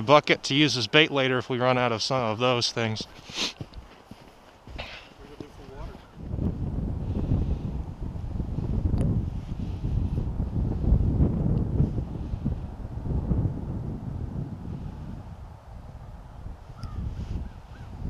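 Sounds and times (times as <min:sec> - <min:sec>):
wind buffeting microphone: 0:02.2 - 0:18.0.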